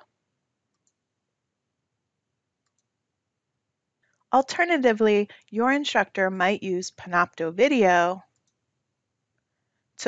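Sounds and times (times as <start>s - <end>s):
faint mouse click: 2.6s - 2.9s.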